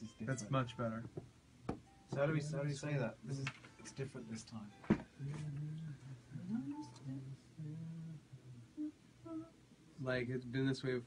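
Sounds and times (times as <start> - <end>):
man humming: 5.2 - 9.6.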